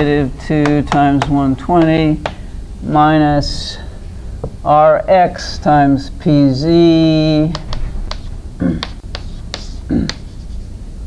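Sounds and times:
chalk tapping on blackboard: 0:00.6 - 0:02.4, 0:07.3 - 0:10.6.

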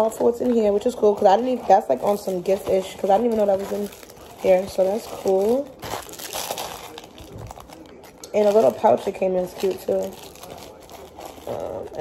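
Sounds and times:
packaging rustling: 0:00.0 - 0:12.0.

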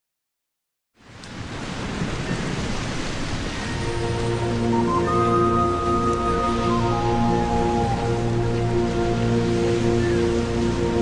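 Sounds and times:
rushing water with low rumble: 0:01.0 - 0:11.0.

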